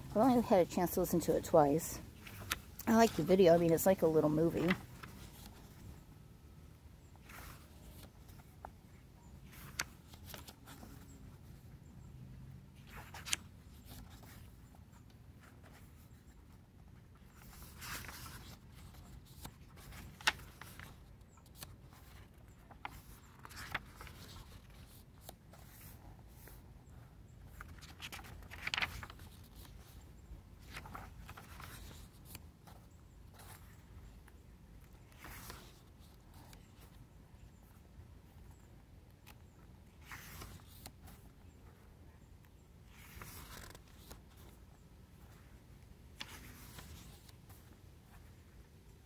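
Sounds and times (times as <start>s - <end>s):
paper pages swishing: 27.5s - 29.9s, 42.9s - 44.6s.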